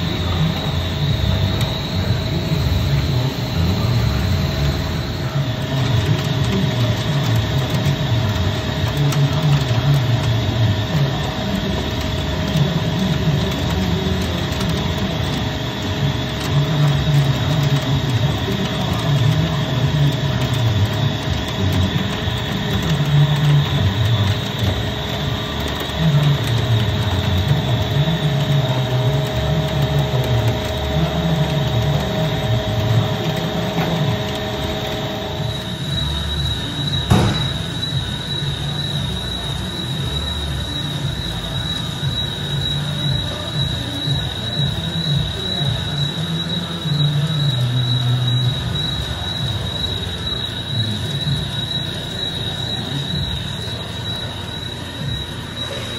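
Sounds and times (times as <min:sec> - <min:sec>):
lathe machining and spindle noise: 0:00.0 - 0:55.9
thin steady whine: 0:00.0 - 0:55.9.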